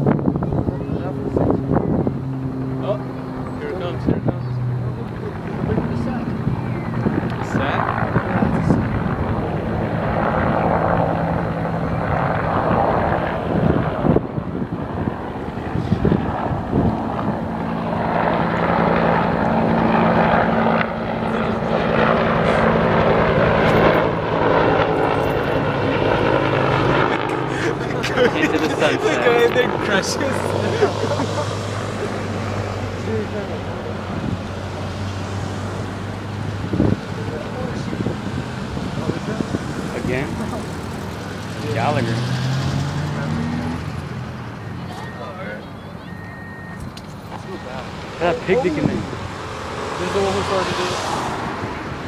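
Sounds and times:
helicopter flying overhead: 0:00.0 - 0:52.0.

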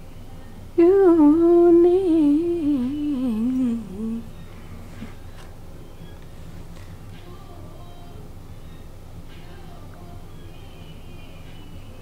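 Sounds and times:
woman humming: 0:00.8 - 0:04.4.

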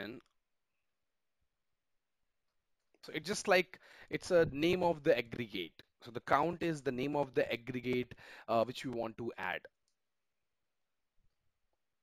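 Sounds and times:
man speaking: 0:00.0 - 0:00.3, 0:03.0 - 0:09.8.

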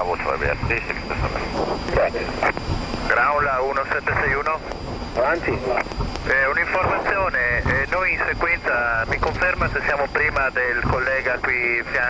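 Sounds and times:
cockpit background noise: 0:00.0 - 0:12.0
radio speech: 0:00.0 - 0:12.0.

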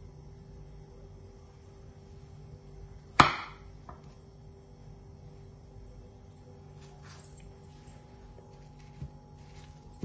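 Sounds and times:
knife chopping onto countertop: 0:03.2 - 0:04.0.

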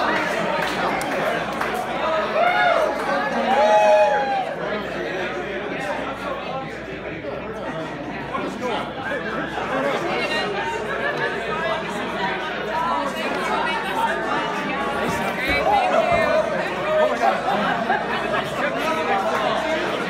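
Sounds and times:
audience chatter: 0:00.0 - 0:20.0.

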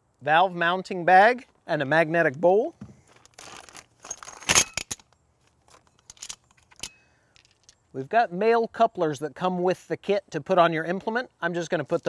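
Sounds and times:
plastic bag rustling: 0:03.1 - 0:04.4.

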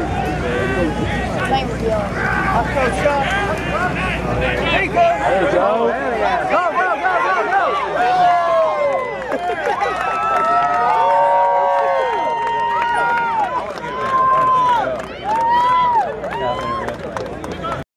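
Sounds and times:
crowd cheering and shouting: 0:00.0 - 0:17.8.

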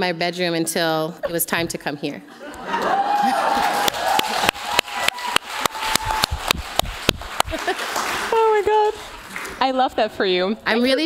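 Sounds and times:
audience laughing: 0:02.3 - 0:03.9, 0:07.3 - 0:08.6
audience cheering and clapping: 0:02.4 - 0:09.6
person whooping: 0:02.7 - 0:06.4.

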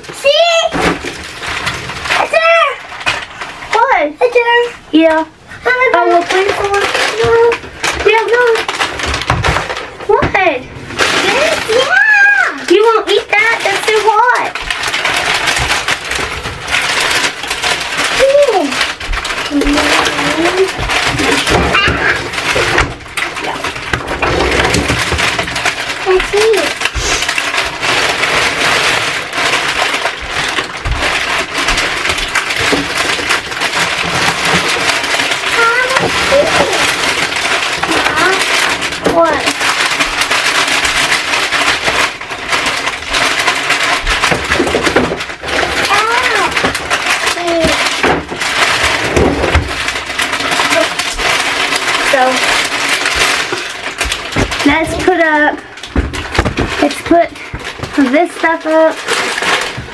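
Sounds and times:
plastic bags rustling: 0:00.0 - 0:59.9.

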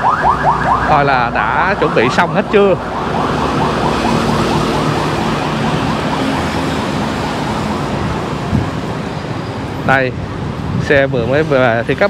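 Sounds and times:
electronic siren whooping: 0:00.0 - 0:07.8.

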